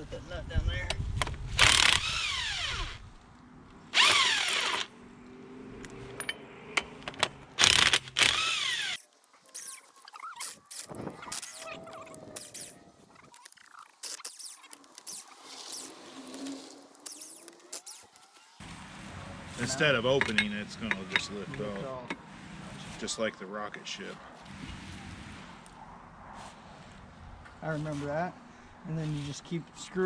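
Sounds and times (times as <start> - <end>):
cordless power tool spinning: 1.6 - 3.0, 3.9 - 4.9, 7.6 - 11.7, 12.3 - 12.8, 13.4 - 18.6
brief squeaks: 9.5 - 18.6.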